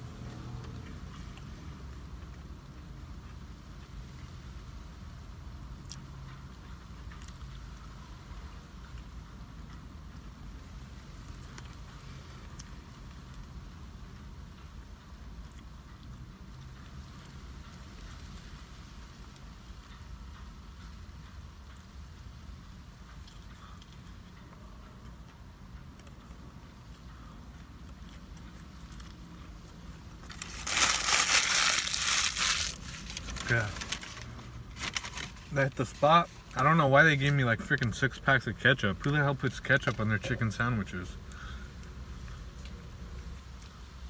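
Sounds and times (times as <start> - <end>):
low rumble inside a car: 0.0 - 44.0
paper bag and wrappers crinkling: 30.2 - 36.0.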